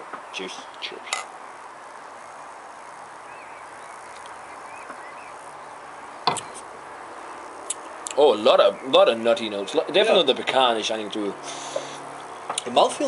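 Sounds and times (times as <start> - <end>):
background hiss: 0.0 - 13.0
faint chirps: 1.9 - 6.6.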